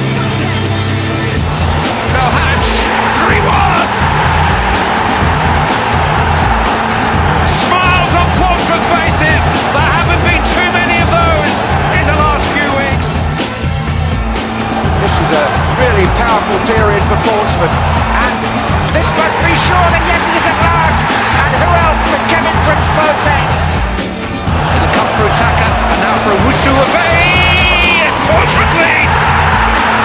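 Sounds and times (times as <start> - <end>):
music with bass beat: 0.0 - 30.0
stadium crowd roar: 0.0 - 30.0.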